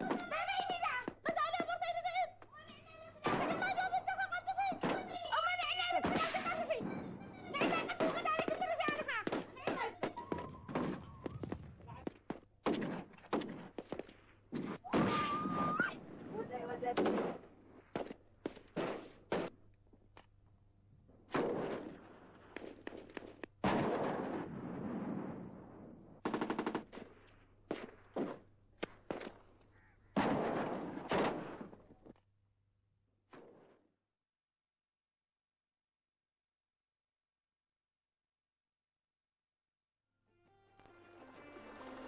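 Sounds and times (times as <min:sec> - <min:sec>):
people talking: 0:00.0 - 0:10.5, 0:11.8 - 0:12.1, 0:16.3 - 0:17.1
single gunshots: 0:12.6 - 0:14.0, 0:14.6 - 0:15.7, 0:16.9 - 0:19.5, 0:21.3 - 0:22.1, 0:22.8 - 0:25.5, 0:30.1 - 0:31.8.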